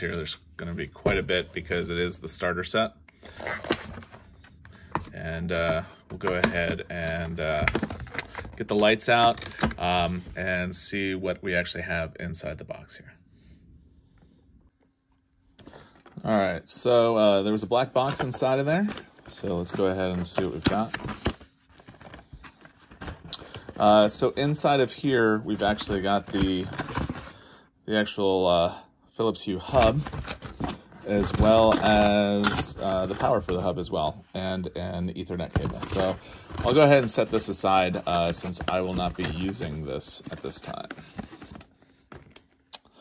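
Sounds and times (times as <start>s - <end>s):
cardboard rustling: 3.2s - 10.5s, 17.4s - 27.3s, 29.6s - 34.6s, 35.4s - 42.6s.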